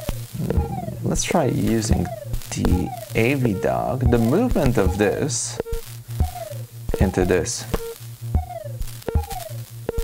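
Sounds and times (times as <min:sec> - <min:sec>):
synthesizer low drone: 0:00.0 - 0:05.4
percussive synth hits: 0:00.0 - 0:07.2, 0:08.3 - 0:10.0
falling synth tone: 0:00.4 - 0:05.2.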